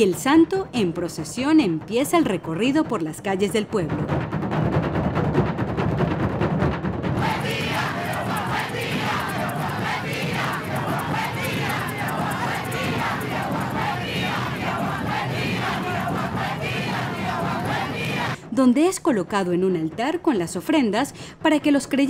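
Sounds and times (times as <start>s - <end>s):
hand drums beating: 2.8s - 18.4s
crowd shouting and singing: 7.2s - 18.4s.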